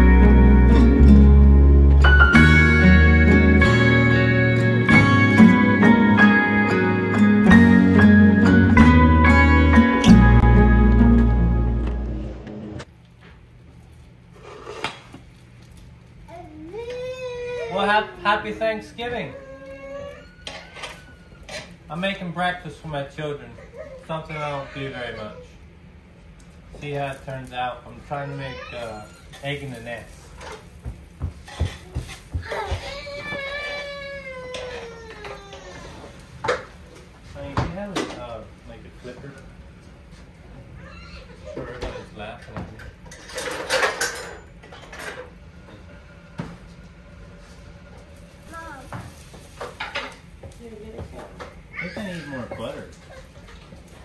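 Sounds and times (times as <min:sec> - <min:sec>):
dishes and utensils clattering: 0:41.5 - 0:45.4.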